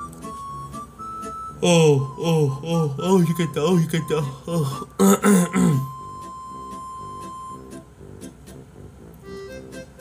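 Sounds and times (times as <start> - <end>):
soft music with light beat: 0.0 - 10.0
man's drawn-out vocal oh: 1.6 - 3.0, 4.3 - 5.9.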